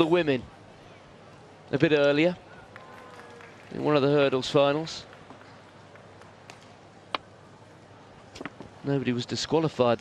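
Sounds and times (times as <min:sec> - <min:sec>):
arena background hubbub: 0:00.0 - 0:10.0.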